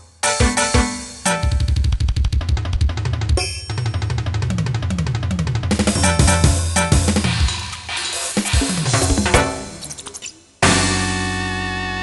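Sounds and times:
instrumental rock music: 0:00.0 - 0:10.0, 0:10.6 - 0:12.0
fast drum kit hits: 0:00.4 - 0:09.9, 0:10.6 - 0:11.4.

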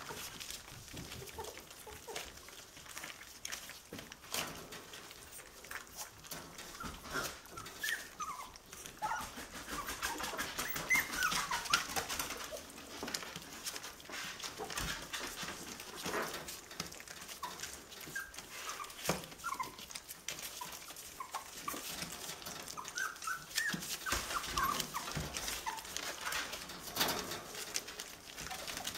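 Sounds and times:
puppies whimpering and squeaking: 0:00.0 - 0:28.9.

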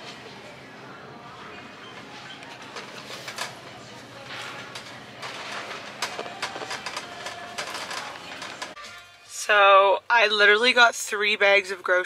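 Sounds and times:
shopping cart rattling: 0:01.8 - 0:08.8.

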